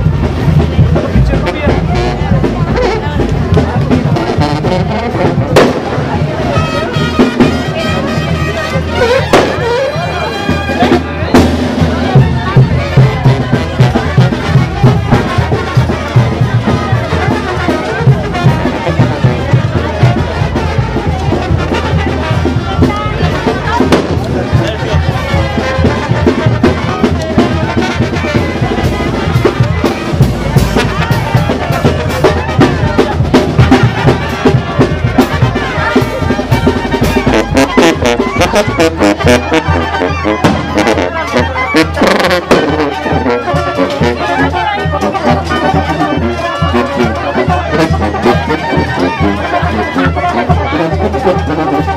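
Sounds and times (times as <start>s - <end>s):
brass and drum band music: 0.0s - 51.9s
crowd chatter: 0.0s - 51.9s.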